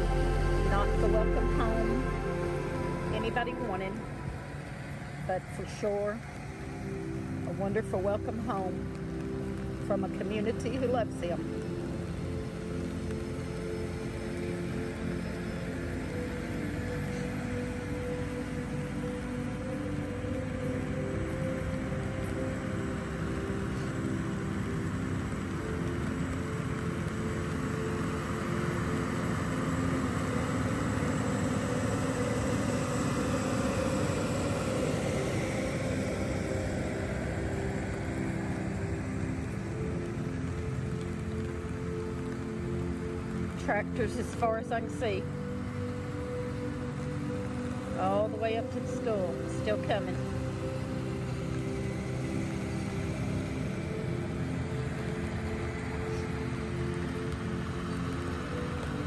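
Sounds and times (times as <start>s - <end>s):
tractor engines droning: 0.0s - 59.0s.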